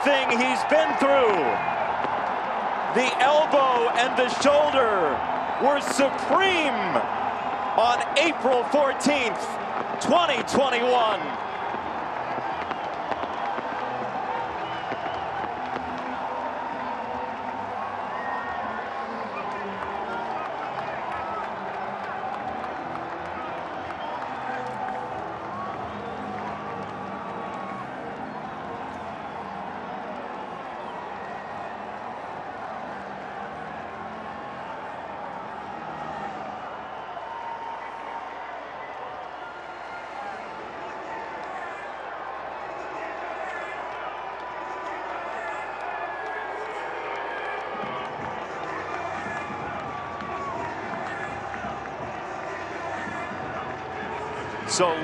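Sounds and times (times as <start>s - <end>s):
crowd cheering and applauding: 0.0s - 55.0s.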